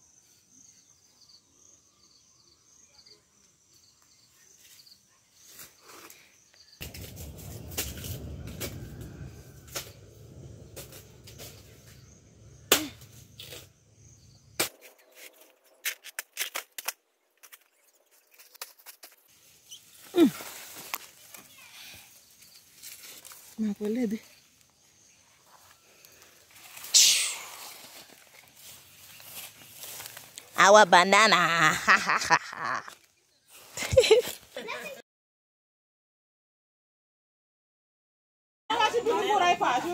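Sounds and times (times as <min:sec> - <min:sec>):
insects chirring: 0:00.0 - 0:15.8
low microphone rumble: 0:06.8 - 0:14.6
snapping twigs: 0:14.6 - 0:17.7
footsteps crunching dry leaves: 0:14.7 - 0:21.6, 0:26.5 - 0:30.8.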